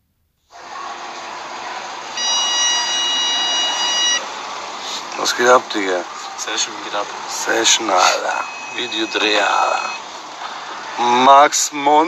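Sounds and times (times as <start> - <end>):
parking sensor continuous tone: 0.5 - 12.0
steady rushing hiss: 0.5 - 12.0.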